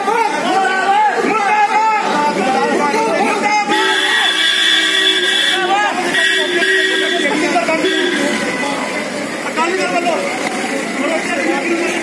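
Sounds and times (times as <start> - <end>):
crowd shouting: 0.0 - 12.0
vehicle horn blasts: 3.7 - 8.5.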